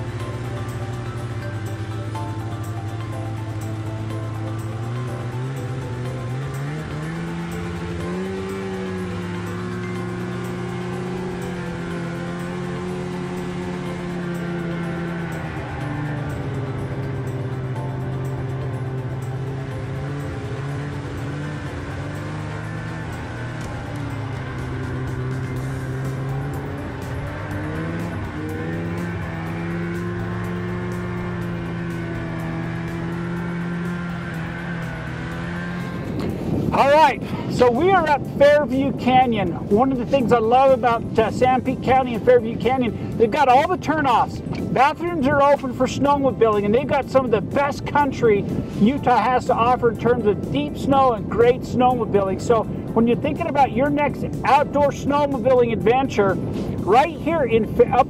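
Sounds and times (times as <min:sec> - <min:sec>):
snowmobile engine running: 0:00.0 - 0:58.0.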